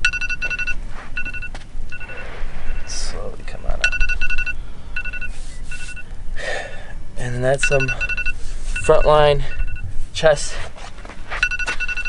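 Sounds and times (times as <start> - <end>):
high electronic beeps: 0.0 - 3.2, 3.8 - 6.1, 7.5 - 9.9, 11.4 - 12.0.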